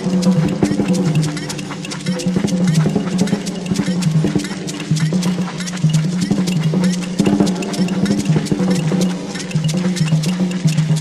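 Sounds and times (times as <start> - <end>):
hand percussion clicks and strokes: 0.0 - 11.0.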